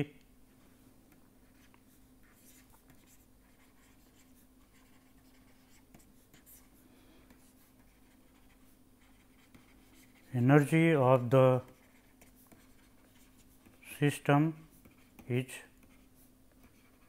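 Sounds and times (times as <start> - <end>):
low steady hum: 0.0 - 17.0
stylus tapping and scratching on tablet: 1.1 - 17.0.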